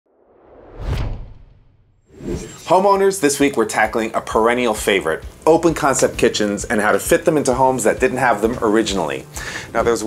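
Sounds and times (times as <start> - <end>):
whoosh with deep low hit: 0.1 - 2.7.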